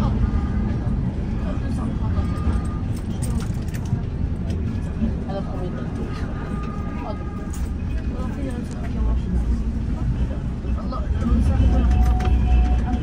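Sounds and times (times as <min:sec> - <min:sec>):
tram rumbling: 0:00.0 - 0:13.0.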